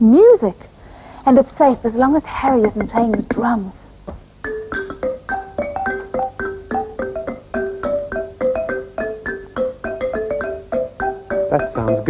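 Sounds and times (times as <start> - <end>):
wooden xylophone tune: 2.4 - 3.6, 4.4 - 12.0.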